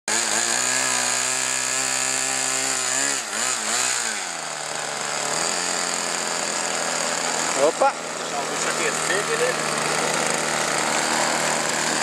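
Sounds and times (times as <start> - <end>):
model aircraft engine running: 0.1 - 12.0.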